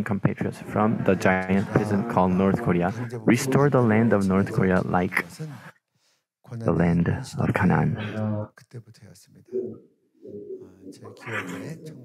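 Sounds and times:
man speaking quietly into microphone: 0.0s - 5.7s, 10.6s - 12.0s.

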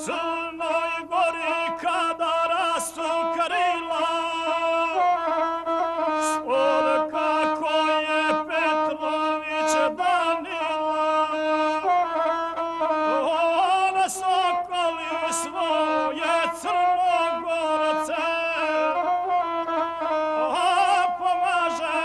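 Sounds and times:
man singing ornamented: 0.0s - 5.4s, 6.0s - 12.0s, 12.8s - 19.4s, 20.4s - 22.0s
bowed fiddle: 0.0s - 22.0s.

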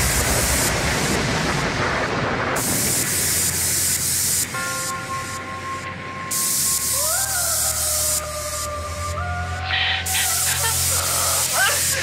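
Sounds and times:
white-noise hiss: 0.0s - 12.0s
held synth chord: 4.5s - 9.7s.

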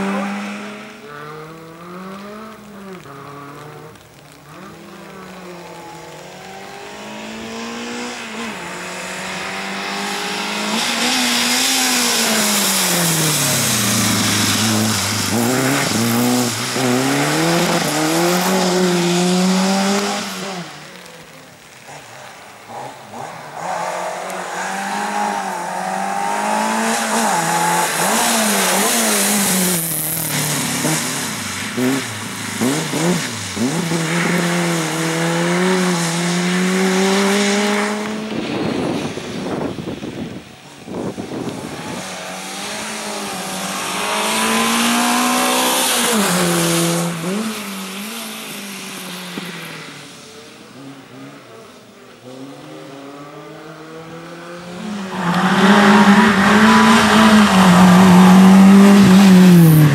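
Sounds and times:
car engine revving: 0.0s - 39.7s, 41.4s - 50.0s, 50.7s - 59.9s
tyres hissing on wet tarmac: 0.0s - 59.9s.

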